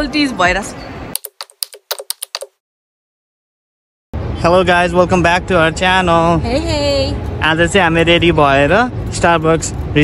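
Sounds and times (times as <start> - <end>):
keyboard typing clicks: 1.2 - 2.6.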